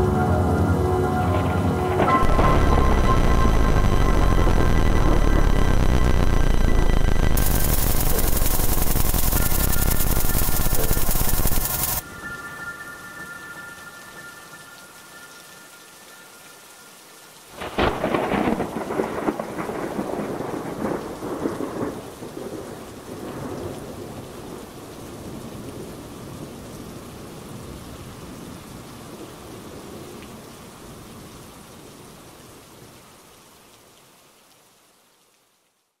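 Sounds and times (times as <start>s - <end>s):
steady held tones: 0.0s - 12.0s
heavy rain: 0.0s - 35.9s
thunderclap rumbling: 1.8s - 12.0s, 17.6s - 23.7s.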